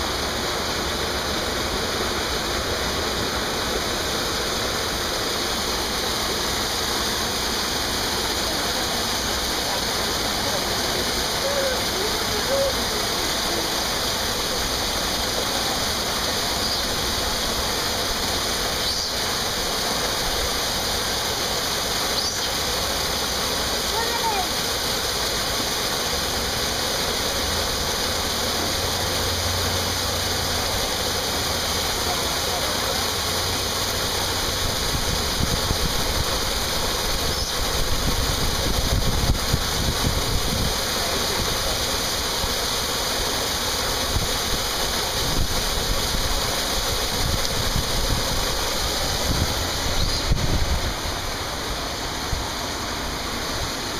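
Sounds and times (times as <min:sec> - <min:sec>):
water pouring into pool: 0:00.0 - 0:53.9.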